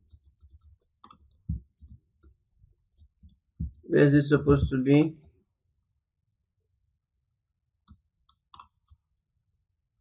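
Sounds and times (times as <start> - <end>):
computer mouse clicks: 0.0 - 3.5, 7.8 - 9.0.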